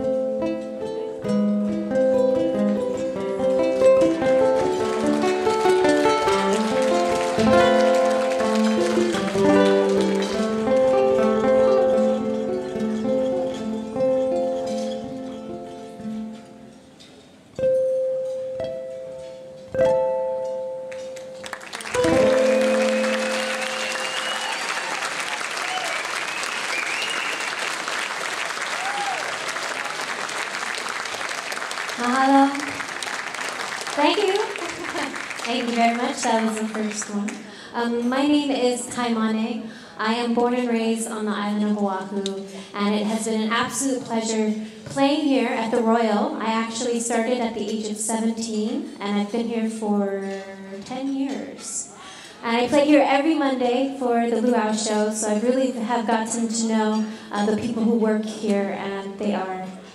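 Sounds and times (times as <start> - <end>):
fingerpicked ukulele: 0.0 - 16.8, 17.6 - 24.5
audience applauding and cheering: 4.2 - 11.2, 21.4 - 37.4.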